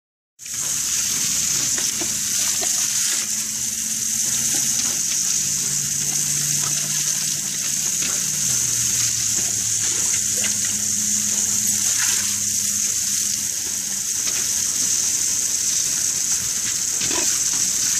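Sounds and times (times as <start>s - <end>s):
hose spray hissing on concrete: 0.4s - 17.9s
water spattering: 0.4s - 17.9s.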